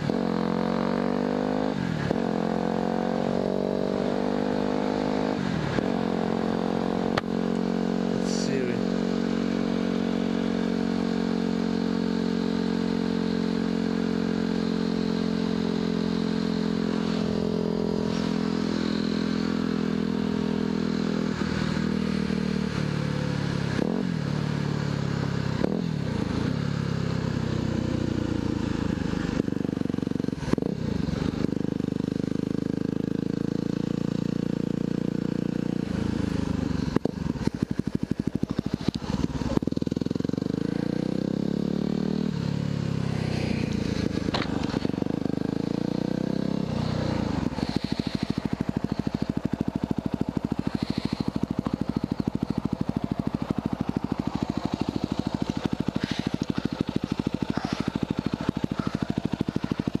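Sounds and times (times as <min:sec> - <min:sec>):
motorcycle engine revving and idling: 0:00.0 - 1:00.0.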